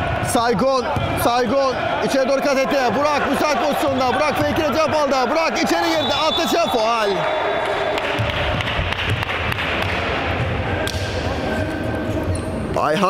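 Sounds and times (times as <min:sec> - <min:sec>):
chatter of players: 0:00.0 - 0:13.0.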